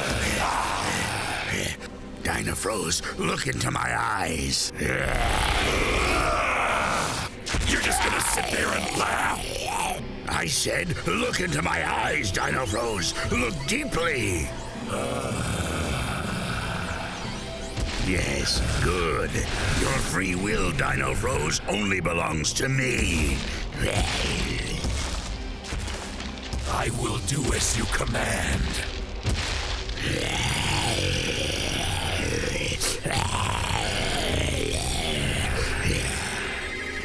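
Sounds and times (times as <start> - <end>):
background music: 0.0 - 37.0.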